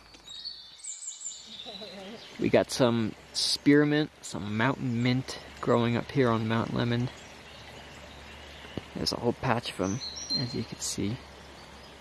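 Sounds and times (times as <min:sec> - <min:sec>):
flowing stream: 0:00.0 - 0:12.0.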